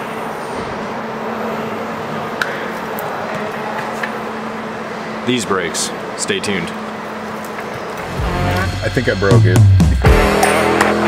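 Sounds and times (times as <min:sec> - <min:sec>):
workshop hum: 0:00.0 - 0:11.0.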